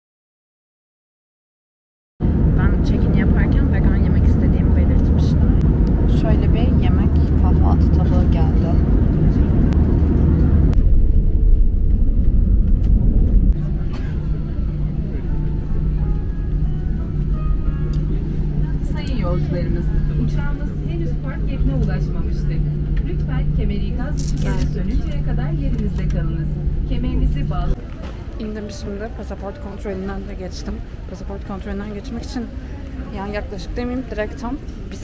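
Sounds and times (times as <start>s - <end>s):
engine hum: 2.2s - 35.0s
jet and runway rumble: 2.2s - 35.0s
faint voices: 13.6s - 35.0s.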